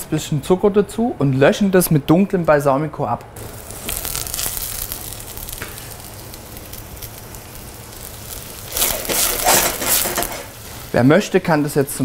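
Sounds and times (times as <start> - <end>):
vegetables sizzling in butter: 3.4 - 12.0.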